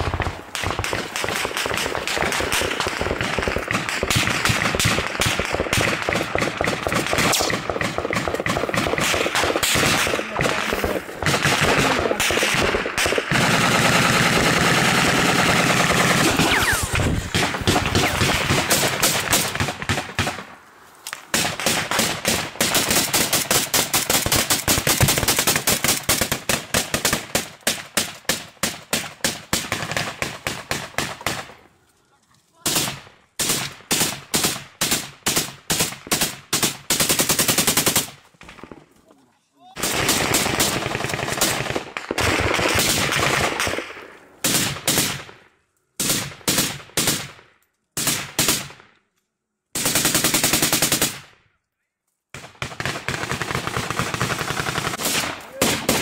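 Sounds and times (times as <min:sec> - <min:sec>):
automatic rifle fire: 0:00.0 - 0:20.5, 0:39.8 - 0:45.4, 0:52.4 - 0:56.0.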